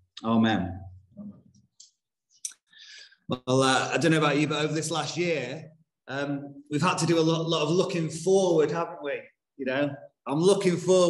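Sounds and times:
man breathing in: 2.7s - 3.2s.

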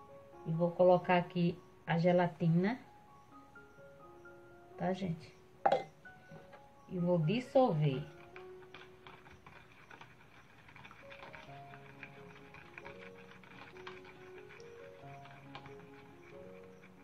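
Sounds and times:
quiet background music: 0.0s - 17.0s
spoon stirring in plastic tub: 7.3s - 17.0s.

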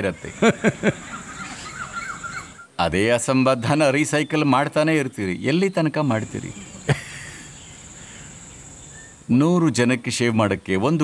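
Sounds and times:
cricket trilling: 6.1s - 9.3s.

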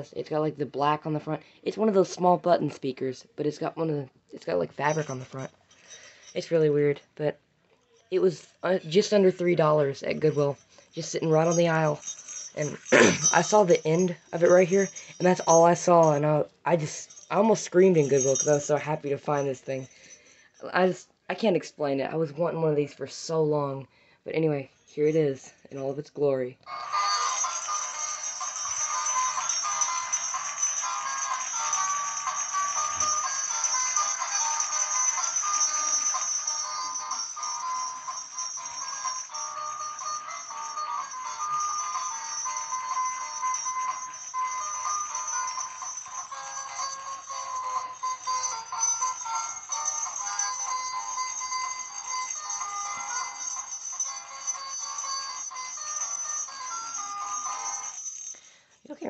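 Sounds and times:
tinny toy speaker playing song: 26.7s - 58.3s.

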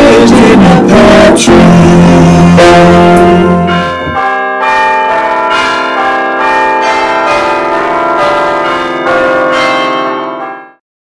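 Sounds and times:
bells ringing: 0.0s - 10.8s.

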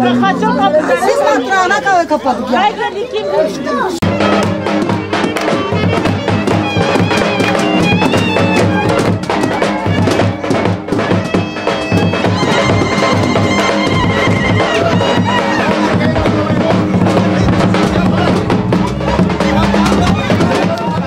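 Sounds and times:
people talking: 0.0s - 21.0s
shrill reed wind instrument: 4.0s - 16.0s
driving drum beat: 4.0s - 21.0s.

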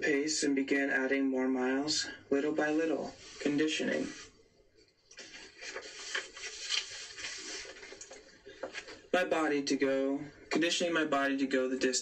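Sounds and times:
book pages rustling: 5.1s - 9.1s.

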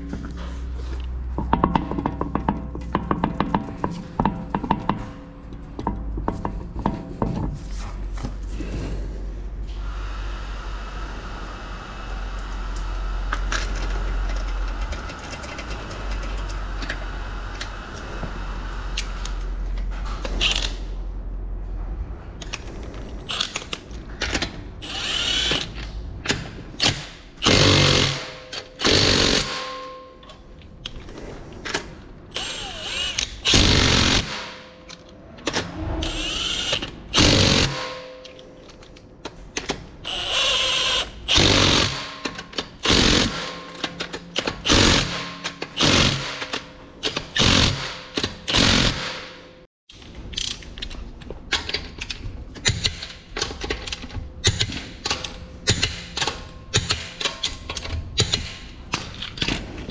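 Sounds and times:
impact wrench bursts: 24.8s - 25.8s, 26.8s - 30.0s, 32.3s - 34.6s, 36.0s - 38.1s, 40.0s - 49.4s.

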